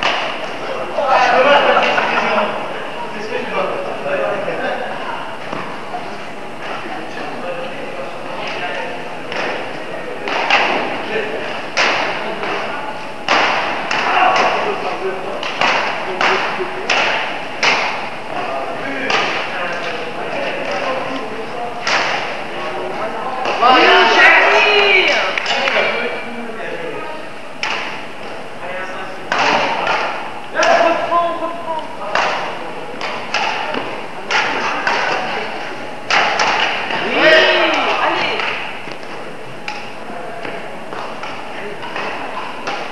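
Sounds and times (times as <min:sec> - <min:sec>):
rackets hitting shuttlecock: 0:00.0 - 0:00.7, 0:09.3 - 0:18.4, 0:19.0 - 0:20.0, 0:21.8 - 0:22.4, 0:27.6 - 0:28.4, 0:29.3 - 0:30.9, 0:32.1 - 0:35.4, 0:36.0 - 0:42.9
badminton racket hitting shuttlecock: 0:13.3 - 0:14.7, 0:15.4 - 0:18.1, 0:32.1 - 0:35.3, 0:36.1 - 0:39.0.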